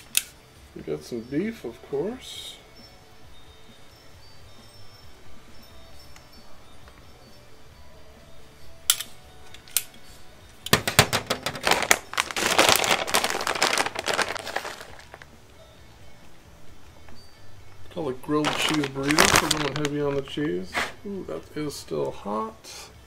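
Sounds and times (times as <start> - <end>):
plastic bag crinkling: 10.7 - 15.3, 18.2 - 20.4.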